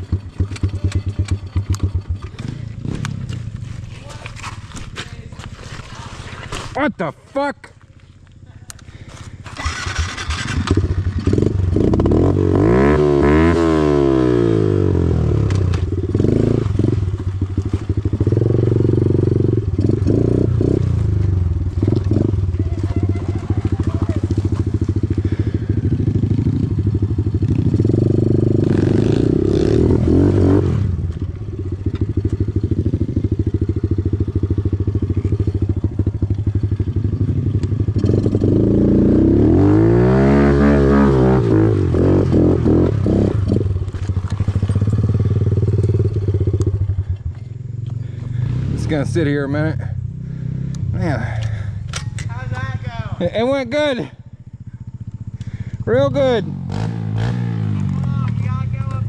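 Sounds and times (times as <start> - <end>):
motorbike engine idling and revving: 0.0 - 5.6, 8.0 - 59.0.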